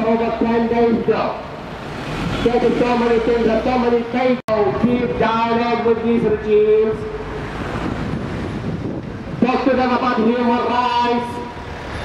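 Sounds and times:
city street traffic hum: 0:00.0 - 0:12.0.

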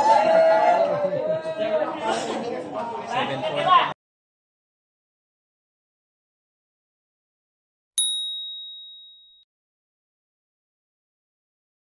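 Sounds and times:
high notification bell ding: 0:08.0 - 0:09.4.

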